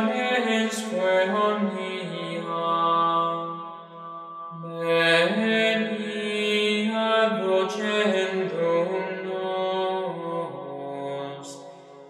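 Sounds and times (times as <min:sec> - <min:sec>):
plainsong chant: 0:00.0 - 0:12.0.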